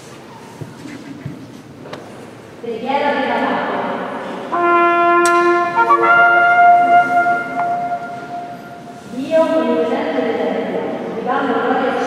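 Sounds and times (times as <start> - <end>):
held musical notes: 4.5 - 9.2.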